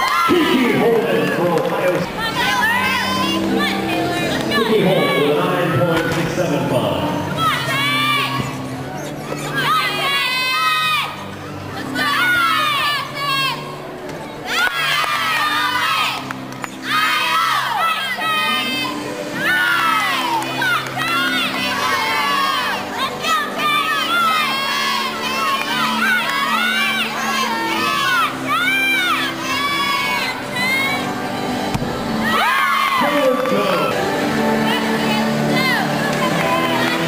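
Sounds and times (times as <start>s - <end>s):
crowd shouting and cheering: 0.0s - 37.0s.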